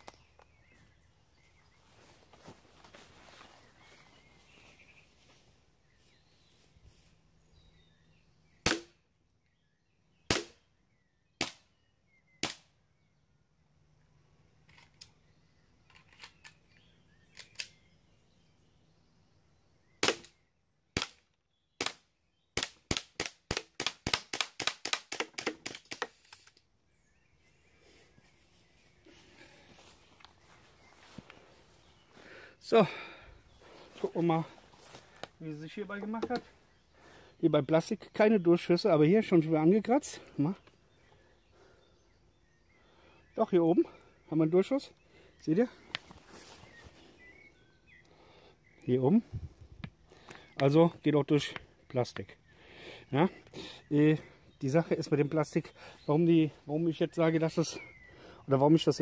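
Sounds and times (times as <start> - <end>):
air pistol firing sharp cracks: 8.6 - 9.0, 10.3 - 10.6, 11.4 - 11.7, 12.4 - 12.7, 20.0 - 26.4.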